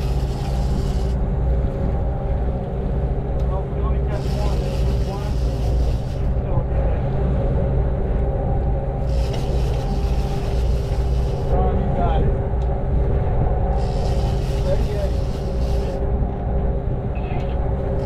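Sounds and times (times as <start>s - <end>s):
boat engines droning: 0.0s - 18.0s
engine whine: 0.0s - 18.0s.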